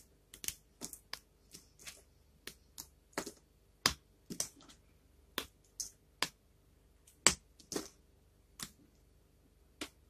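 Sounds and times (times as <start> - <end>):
dry soap cracking: 0.0 - 6.4.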